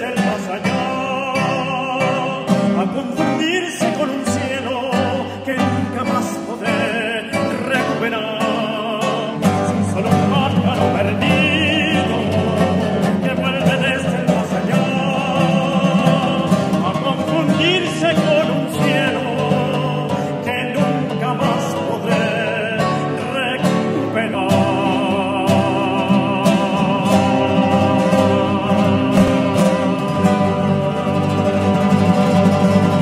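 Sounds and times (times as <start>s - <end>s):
classical guitars playing tango: 0.0s - 33.0s
tenor singing operatically: 0.0s - 33.0s.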